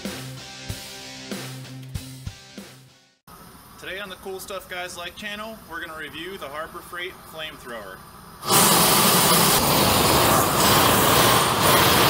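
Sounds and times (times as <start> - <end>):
propane torch flame roaring: 7.9 - 12.0.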